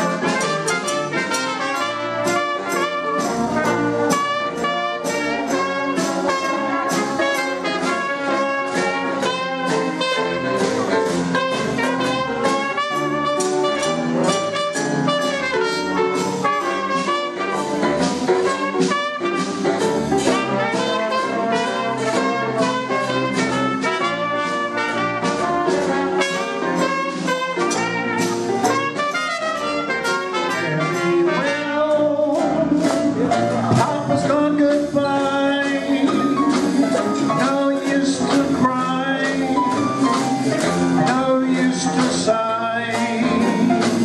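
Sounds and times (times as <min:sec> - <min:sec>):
jazz band playing: 0:00.0 - 0:44.0.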